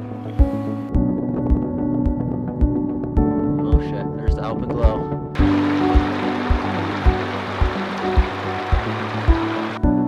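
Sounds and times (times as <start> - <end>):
background music with beat: 0.0 - 10.0
waterfall rushing: 5.4 - 9.8.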